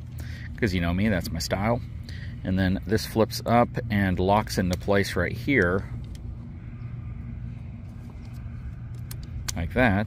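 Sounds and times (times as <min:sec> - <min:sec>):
engine idling: 0:00.0 - 0:10.0.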